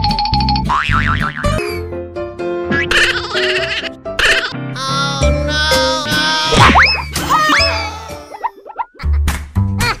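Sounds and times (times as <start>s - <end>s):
cartoon soundtrack music: 0.0s - 10.0s.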